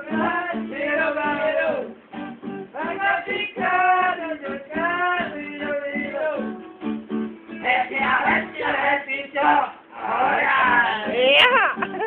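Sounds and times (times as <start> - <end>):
plucked acoustic guitar: 0.0 - 12.0
man singing: 2.8 - 6.6.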